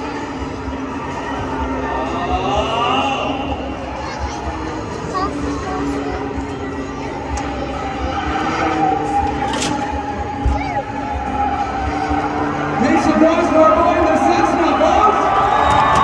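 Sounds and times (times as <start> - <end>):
crowd noise: 0.0 - 16.0.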